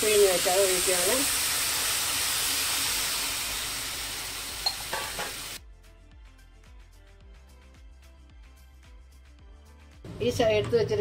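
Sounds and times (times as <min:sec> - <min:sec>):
water sizzling in a hot pan: 0:00.0 - 0:05.6
quiet background music: 0:05.0 - 0:11.0.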